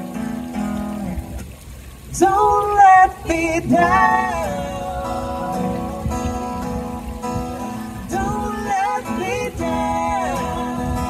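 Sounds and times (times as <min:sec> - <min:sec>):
acoustic guitar strumming: 0:00.0 - 0:11.0
person singing: 0:02.1 - 0:11.0.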